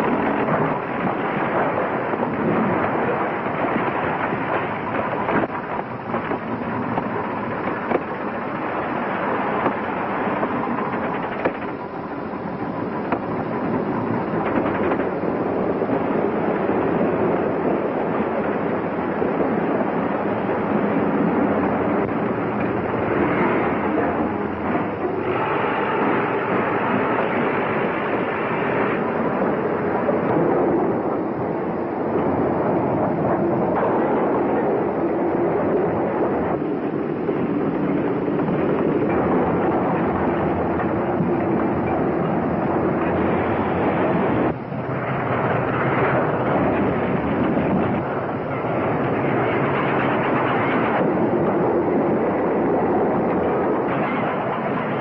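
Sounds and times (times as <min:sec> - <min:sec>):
train rumbling along track: 0:00.0 - 0:55.0.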